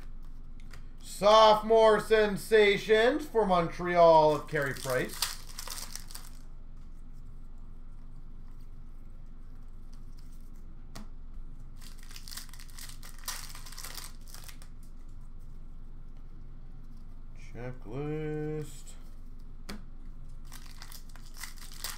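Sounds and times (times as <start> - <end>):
foil wrappers crinkling and tearing: 4.3 - 6.5, 11.8 - 14.9, 20.4 - 21.9.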